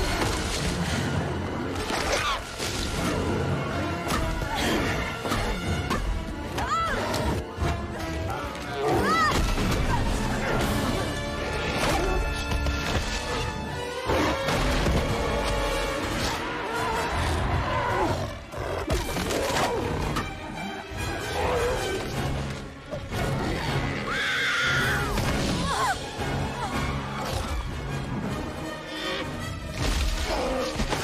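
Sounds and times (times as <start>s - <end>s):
orchestral film score: 0.0s - 31.0s.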